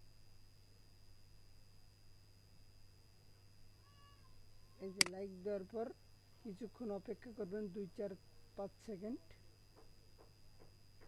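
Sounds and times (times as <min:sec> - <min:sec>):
faint high whine: 0:00.0 - 0:11.0
low electrical hum: 0:00.0 - 0:11.0
person speaking: 0:04.8 - 0:05.8.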